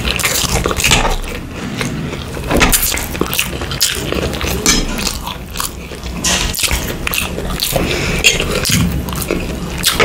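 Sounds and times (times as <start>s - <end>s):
chewing food: 0.0s - 10.0s
mouth smacks and crunches: 0.0s - 10.0s.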